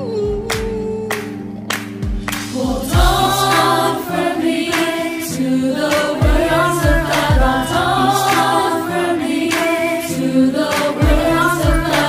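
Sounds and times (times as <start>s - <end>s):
instrumental backing: 0.0s - 12.0s
steady drum beat: 2.0s - 3.9s, 6.0s - 8.5s, 10.8s - 12.0s
choir singing gospel: 2.2s - 12.0s.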